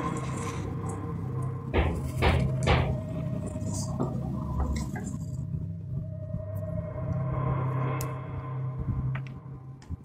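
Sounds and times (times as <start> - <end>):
low droning hum: 0.0 - 10.0.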